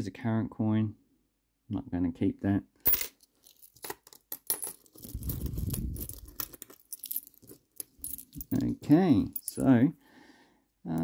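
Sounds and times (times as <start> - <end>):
coins clicking together: 2.9 - 8.7.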